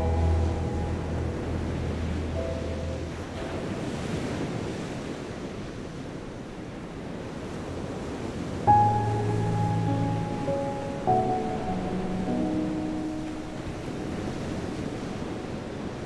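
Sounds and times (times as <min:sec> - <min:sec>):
waves washing onto beach: 0:00.0 - 0:16.0
wind: 0:00.0 - 0:16.0.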